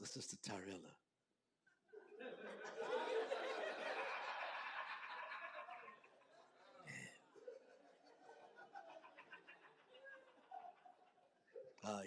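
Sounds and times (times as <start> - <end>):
people laughing: 1.9 - 12.0.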